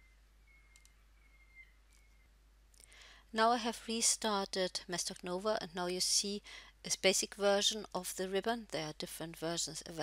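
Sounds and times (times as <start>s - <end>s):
faint mouse clicks: 0.7s - 1.0s.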